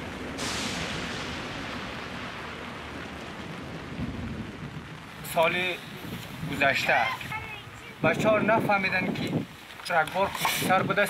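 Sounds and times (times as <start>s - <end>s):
rushing rumbling roar: 0.0s - 9.5s.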